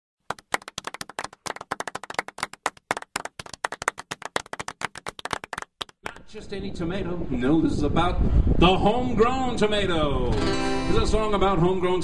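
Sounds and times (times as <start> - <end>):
small audience applauding: 0.3 - 6.2.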